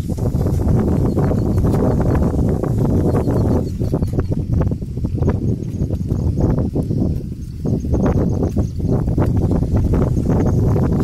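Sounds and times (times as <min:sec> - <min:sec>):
heavy low rumble: 0:00.0 - 0:11.0.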